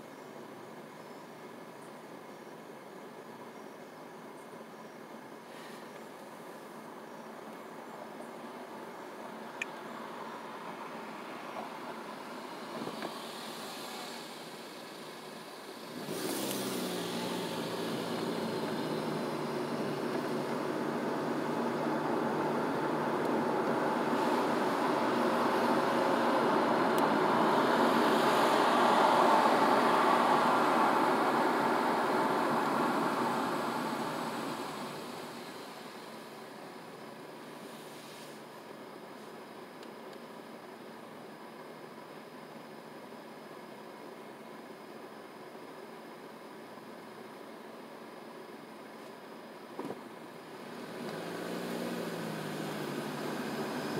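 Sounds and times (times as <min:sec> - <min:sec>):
car engine: 0:08.5 - 0:37.8, 0:49.7 - 0:53.9
tyre and road noise: 0:09.6 - 0:38.5, 0:49.7 - 0:53.9.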